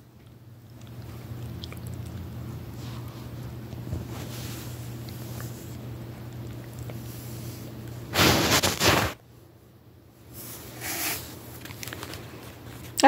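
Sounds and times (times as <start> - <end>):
dog sniffing and snuffling: 1.1 - 5.8, 6.6 - 9.2, 10.4 - 11.4.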